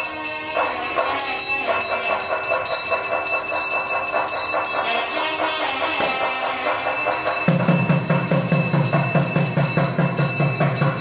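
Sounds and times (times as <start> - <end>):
fast percussion: 0.0 - 11.0
temple bells ringing: 0.0 - 11.0.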